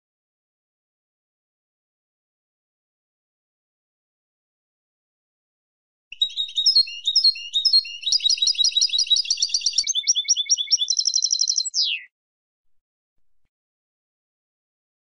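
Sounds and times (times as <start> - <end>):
goldfinch twittering: 6.2 - 12.1.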